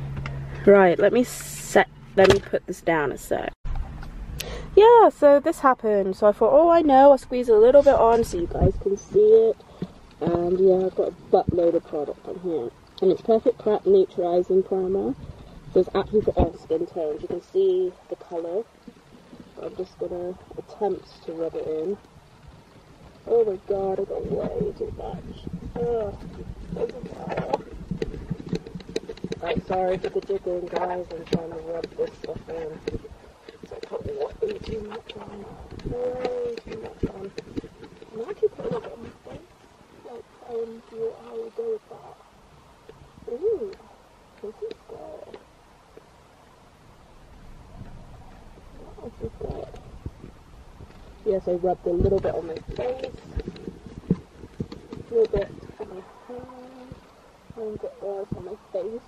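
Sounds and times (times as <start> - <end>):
soft rustle: 6.3 - 59.0.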